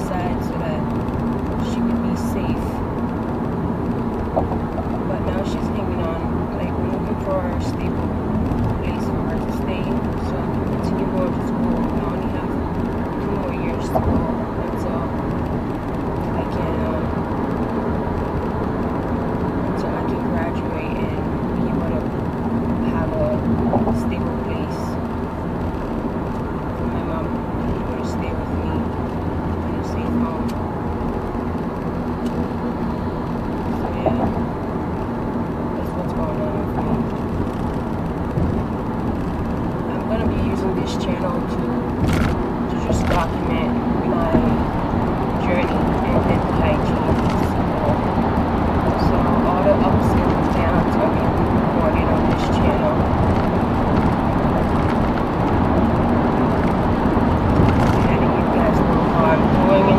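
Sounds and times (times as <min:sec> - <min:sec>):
car interior road noise: 0:00.0 - 0:59.9.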